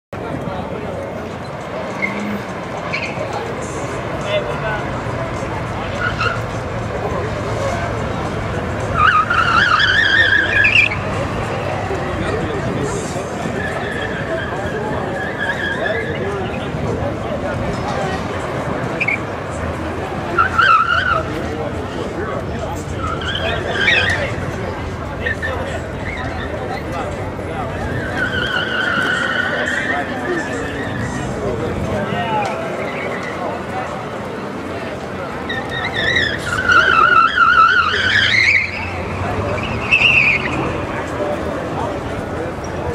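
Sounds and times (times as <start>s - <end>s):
car engine humming: 0.2s - 42.9s
tyres squealing: 1.1s - 16.8s, 17.7s - 21.8s, 22.6s - 34.0s, 34.6s - 42.9s.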